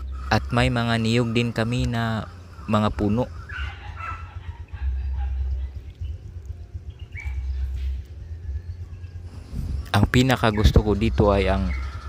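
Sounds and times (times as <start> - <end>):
distant chickens calling: 0.0 - 12.0
wind rumble on microphone: 0.0 - 12.0.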